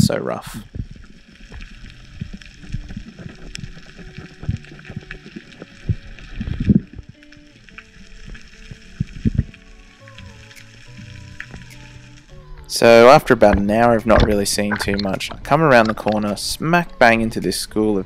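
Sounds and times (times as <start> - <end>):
low thumps: 0.0 - 7.3, 8.2 - 9.6, 13.2 - 16.3
soft background music: 0.0 - 18.0
underwater crackle: 0.0 - 18.0.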